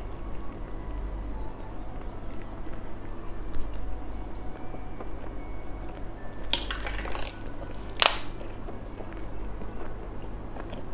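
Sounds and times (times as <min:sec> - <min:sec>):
eating gummy candy: 0:01.4 - 0:04.5, 0:05.9 - 0:10.9.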